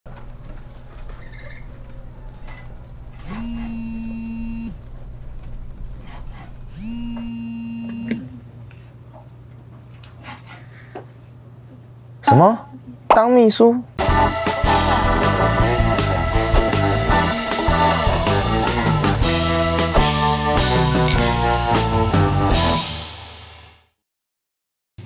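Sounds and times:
low room hum: 0.1 - 14.0.

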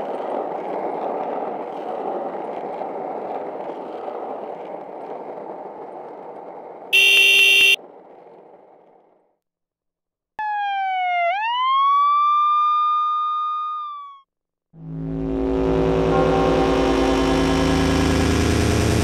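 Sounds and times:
skateboard wheels on asphalt: 0.0 - 9.5
horn blast: 7.0 - 7.8, 14.9 - 19.0
emergency siren wailing: 10.4 - 14.3.

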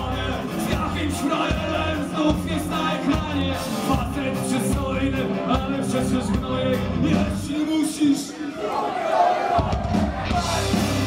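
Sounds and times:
punk rock band playing live: 0.0 - 8.2, 9.6 - 11.0.

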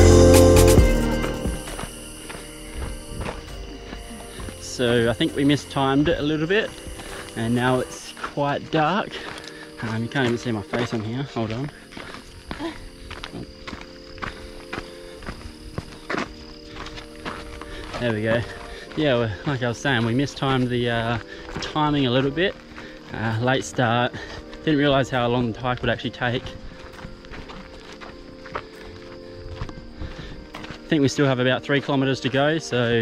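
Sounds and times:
footsteps on trail: 0.0 - 33.0
soft background music: 0.0 - 33.0.

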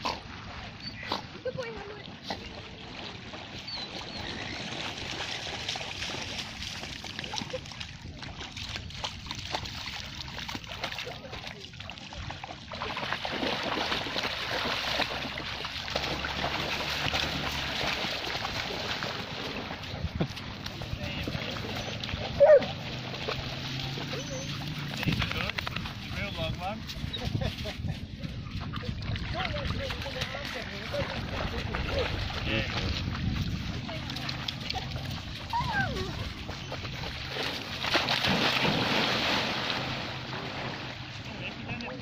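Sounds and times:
dog splashing through water: 0.0 - 41.2
dog barking: 22.4 - 22.8.

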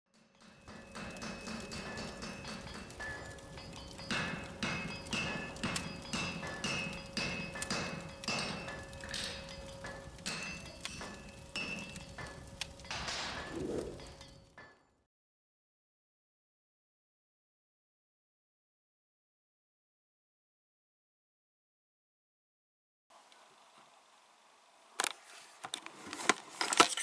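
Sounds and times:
hammer blows on anvil: 0.1 - 14.8
rushing sound: 13.2 - 14.1.

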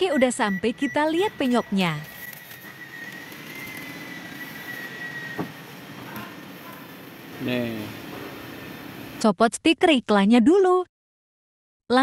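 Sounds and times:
faint high whine: 0.0 - 9.2
workshop background noise: 0.1 - 9.2.

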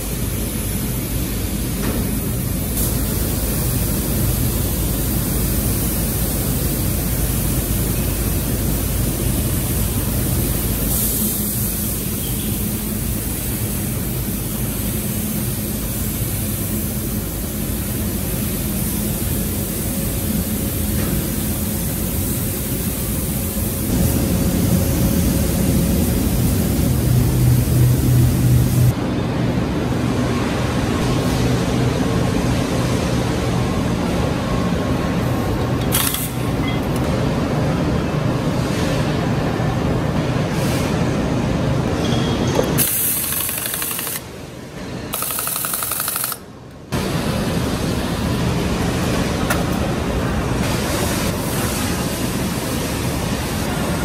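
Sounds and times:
machinery hum: 0.0 - 54.0.

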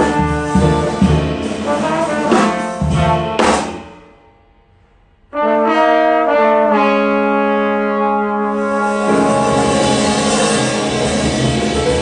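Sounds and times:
trombones holding notes in harmony: 0.0 - 3.5, 5.3 - 12.0
jazz group playing: 0.0 - 4.2, 5.3 - 12.0.

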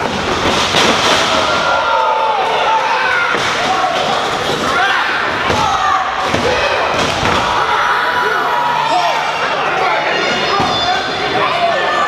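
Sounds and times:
crowd shouting: 1.1 - 12.0.

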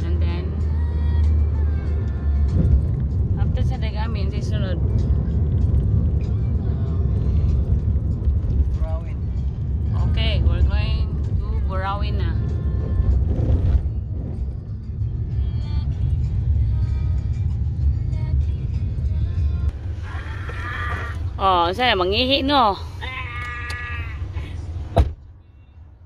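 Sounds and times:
music: 0.0 - 19.7
car rumble from inside cabin: 0.0 - 26.0.

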